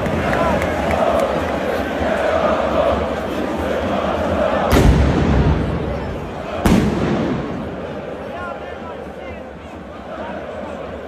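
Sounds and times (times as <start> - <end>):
football crowd noise: 0.0 - 11.0
loud firecracker bang: 4.7 - 7.9.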